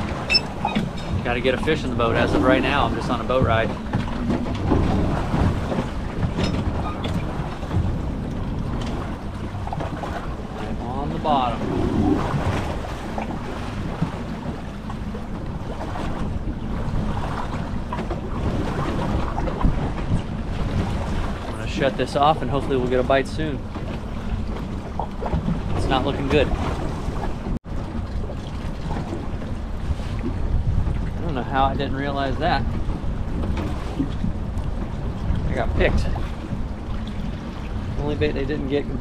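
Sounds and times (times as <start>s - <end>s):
steady low rumble: 0.0s - 39.0s
water wash around boat: 0.0s - 39.0s
wind buffeting microphone: 0.0s - 39.0s.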